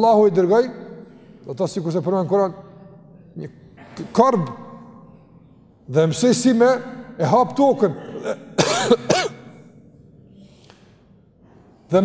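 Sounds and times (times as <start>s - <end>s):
man clearing his throat: 7.9s - 9.6s.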